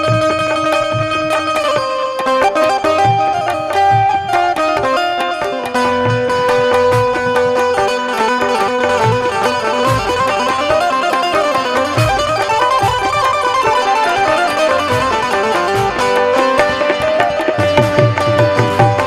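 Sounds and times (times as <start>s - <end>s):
harmonium melody: 0.0s - 19.0s
low tabla strokes: 0.0s - 19.0s.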